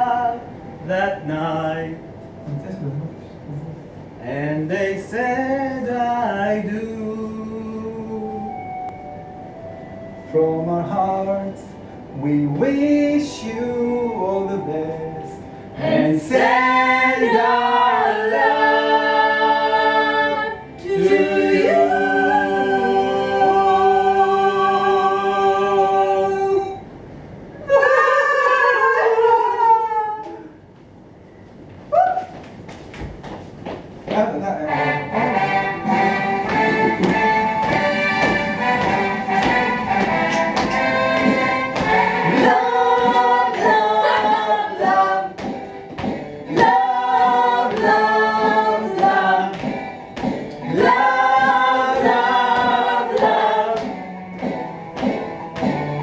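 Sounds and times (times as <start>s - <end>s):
choir singing in harmony: 12.2s - 26.8s, 35.1s - 56.0s.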